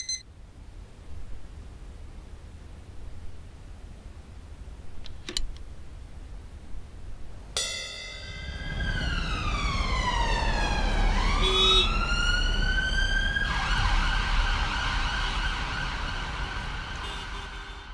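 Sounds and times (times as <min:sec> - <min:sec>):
short beep: 0:00.0 - 0:00.2
low traffic rumble: 0:00.2 - 0:17.9
emergency vehicle siren wailing: 0:08.2 - 0:17.9.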